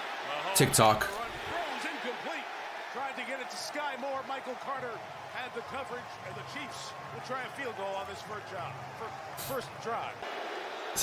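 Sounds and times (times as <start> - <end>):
stadium crowd noise: 0.0 - 11.0
commentator talking: 0.4 - 10.2.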